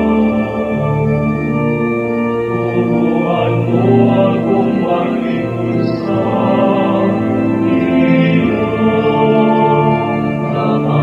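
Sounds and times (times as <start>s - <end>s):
choir singing sacred music: 0.0s - 11.0s.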